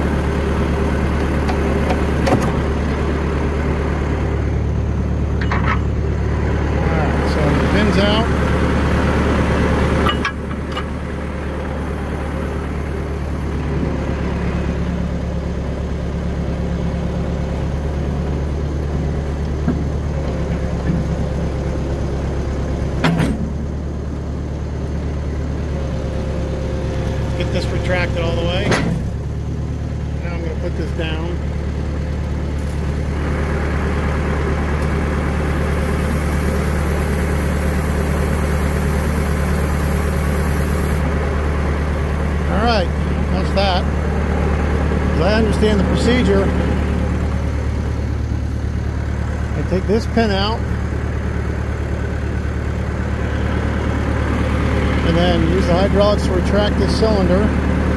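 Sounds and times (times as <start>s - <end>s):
hydraulics working: 0.0s - 57.9s
loader engine running: 0.0s - 57.9s
sharp clunks: 1.5s - 2.6s, 23.0s - 23.5s, 28.6s - 29.1s.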